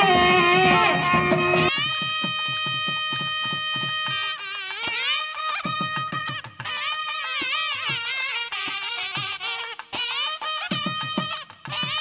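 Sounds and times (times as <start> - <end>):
wind instrument steady note: 0.0 - 1.8
quick even drumbeat: 5.6 - 12.0.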